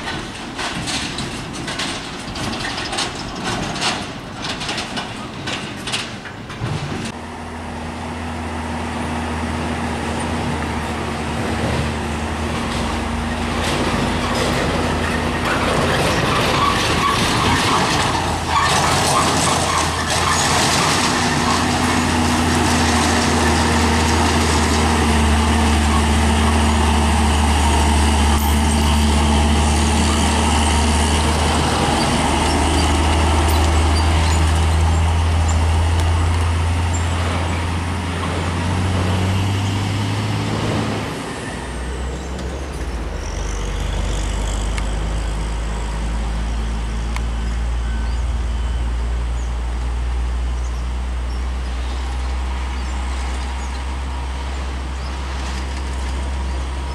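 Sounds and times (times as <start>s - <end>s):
diesel truck engines droning: 0.0s - 56.9s.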